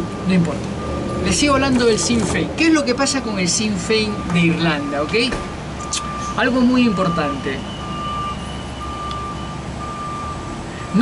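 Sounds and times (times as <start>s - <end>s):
reversing alarm beeping: 0.2s - 11.0s.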